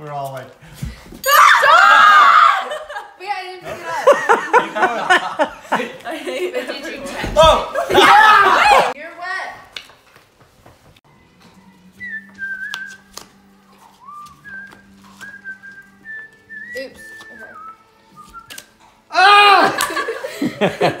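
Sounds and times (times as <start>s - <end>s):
shrieks and laughter: 1.2s - 3.2s, 19.1s - 21.0s
person whistling a tune: 12.0s - 18.7s
playing cards clicking on a rug: 12.6s - 15.4s, 18.2s - 18.8s.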